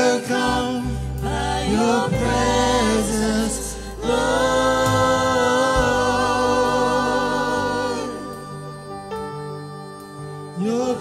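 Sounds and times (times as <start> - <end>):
group singing worship song: 0.0 - 11.0
low band accompaniment: 0.7 - 9.4.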